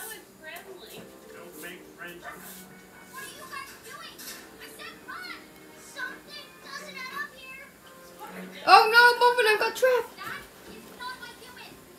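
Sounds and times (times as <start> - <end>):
high-pitched child-like voice: 3.1 - 7.8.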